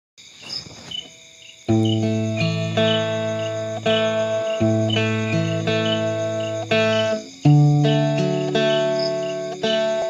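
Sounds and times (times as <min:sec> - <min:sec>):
cricket-like chirping: 0:00.2 - 0:10.0
guitar note ringing: 0:01.7 - 0:10.0.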